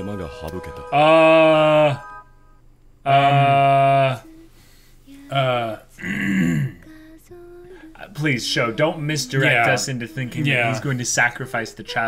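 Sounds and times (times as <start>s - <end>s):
faint music: 0.0s - 12.0s
man's drawn-out vocal ohh: 1.0s - 2.2s, 3.1s - 4.3s, 5.3s - 6.8s.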